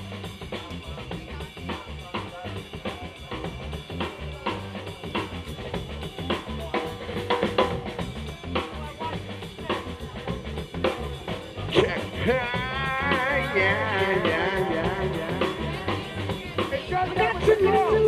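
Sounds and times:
bass: 0.0s - 18.0s
drum kit beat: 0.0s - 18.0s
keyboard: 0.0s - 18.0s.

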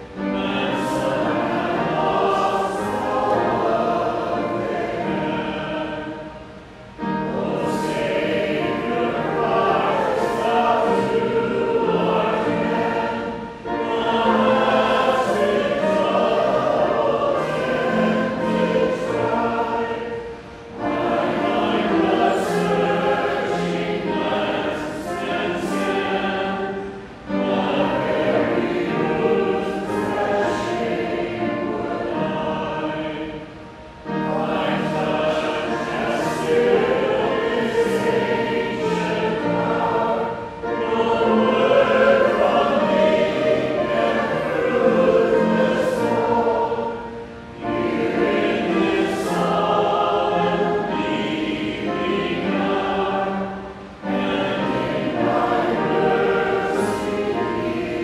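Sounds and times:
congregation singing a hymn: 0.0s - 58.0s.

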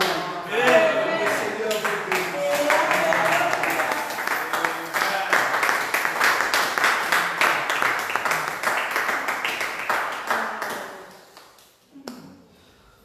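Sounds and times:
voices: 0.0s - 5.7s
congregation clapping in rhythm: 0.0s - 11.8s.

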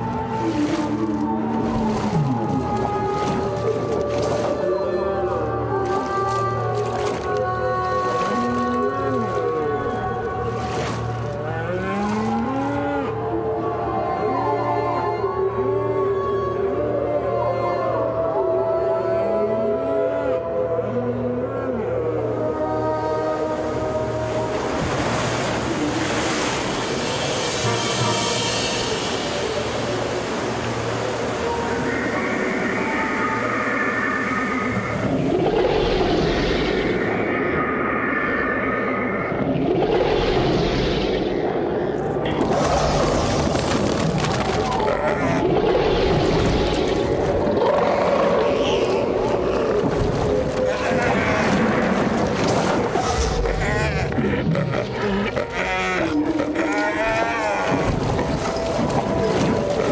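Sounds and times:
churning water rushing: 0.0s - 14.4s, 22.8s - 59.9s.

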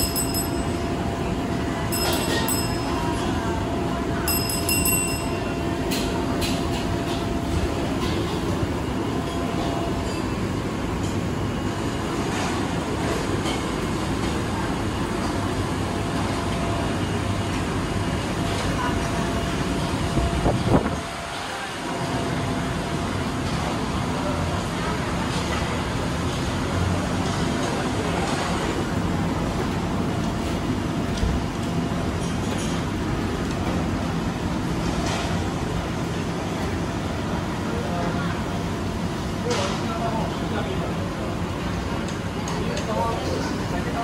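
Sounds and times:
low rumbling background noise: 0.0s - 44.0s.

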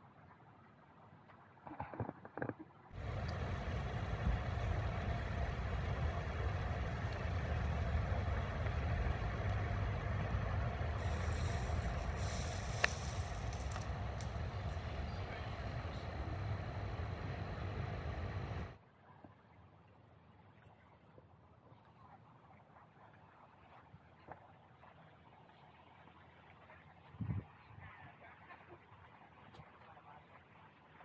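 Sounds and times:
road vehicle rumbling: 2.9s - 18.8s.

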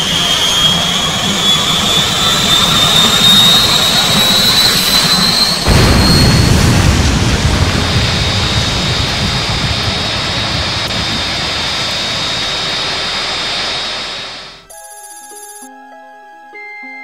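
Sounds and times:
spacecraft engine rushing whine: 0.0s - 14.7s.

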